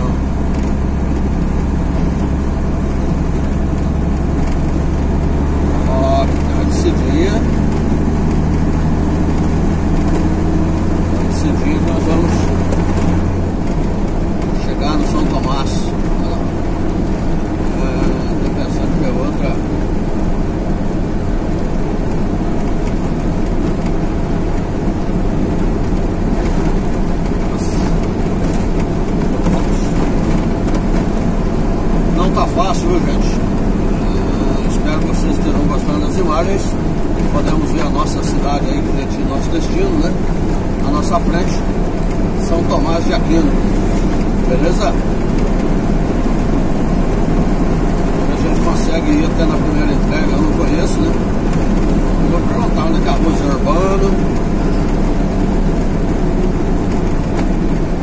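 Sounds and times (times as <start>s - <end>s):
tyre noise on asphalt: 0.0s - 58.0s
vehicle engine drone: 0.0s - 58.0s.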